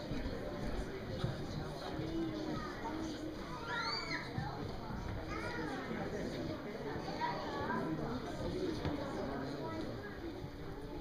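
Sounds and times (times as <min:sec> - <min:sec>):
young children chattering: 0:00.0 - 0:11.0
high child's voice: 0:02.1 - 0:04.5, 0:05.2 - 0:05.9.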